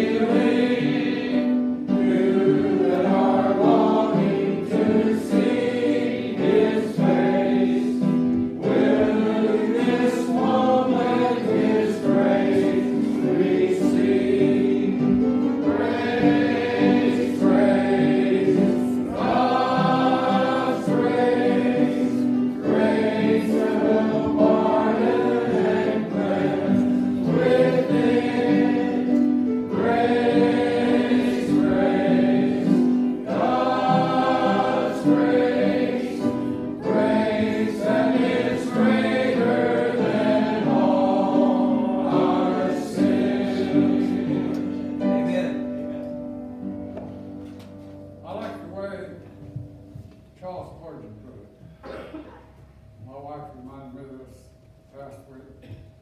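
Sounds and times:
congregation singing a hymn: 0.0 - 50.1.

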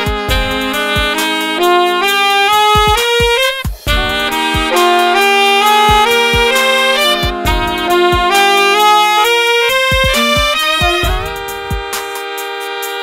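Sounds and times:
backing track with kick drum: 0.0 - 13.0
saxophone playing: 0.0 - 13.0.

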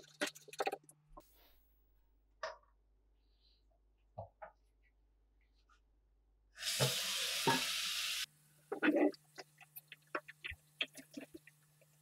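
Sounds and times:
faucet sprayer hissing: 6.6 - 8.3.

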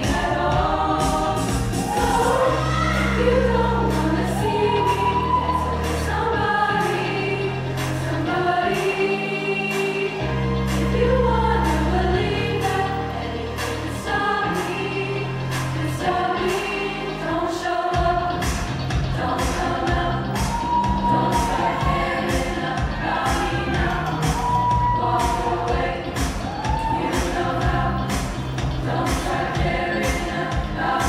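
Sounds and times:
drum beat: 0.0 - 2.4, 18.0 - 30.8
bass: 0.0 - 31.0
choir singing pop song: 0.0 - 31.0.

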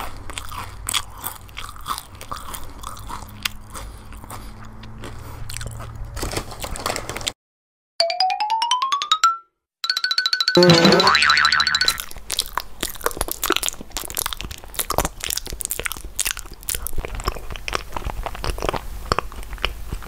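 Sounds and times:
crunching and chewing: 0.0 - 7.4, 12.0 - 20.0
cartoon boing sound effect: 10.6 - 12.0.

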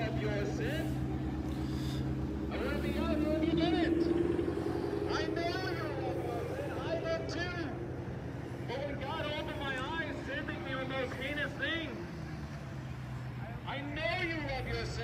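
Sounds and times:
car engines passing: 0.0 - 15.0
indistinct voices talking: 0.0 - 15.0.

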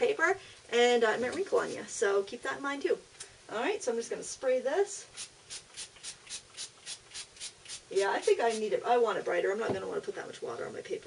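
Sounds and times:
spray bottle spritzing: 5.1 - 8.7.

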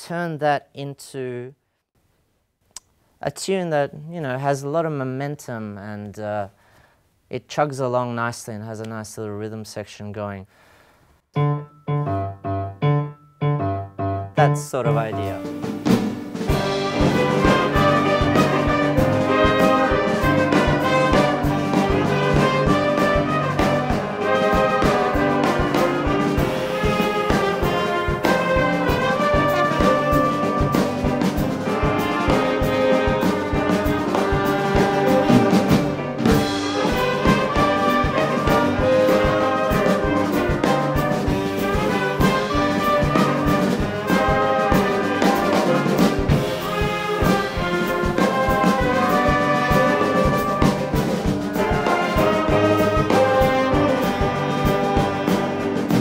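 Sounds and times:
brass band playing: 11.5 - 56.0.

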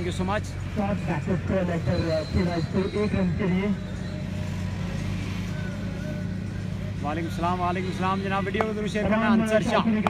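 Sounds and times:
man's voice: 6.8 - 10.0.

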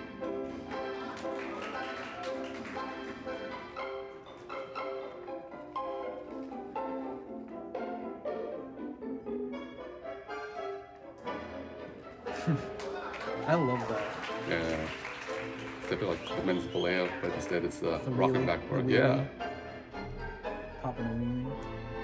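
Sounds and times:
orchestral tango music: 0.0 - 22.0.

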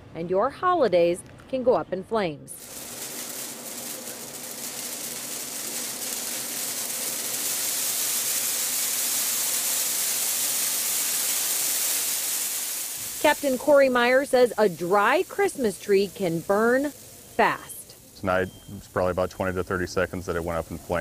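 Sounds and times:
christmas tree burning: 2.6 - 21.0.

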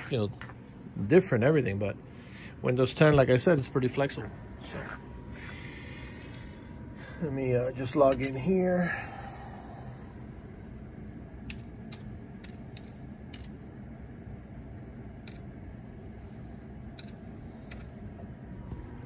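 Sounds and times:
steady low hum: 0.0 - 19.0
keyboard keystrokes: 11.5 - 13.5, 15.2 - 15.5, 17.0 - 17.9.

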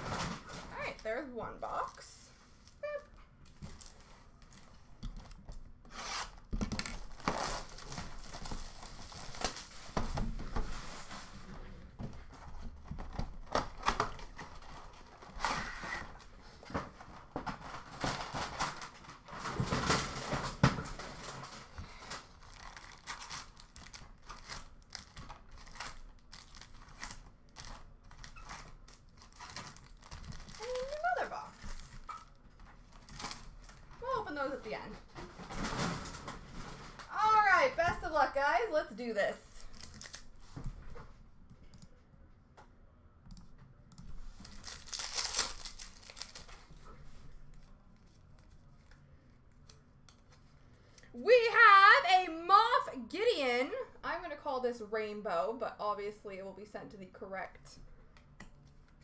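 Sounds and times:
foil packs crinkling and rustling: 3.5 - 11.5, 12.3 - 37.6, 39.6 - 40.6, 44.3 - 49.0.

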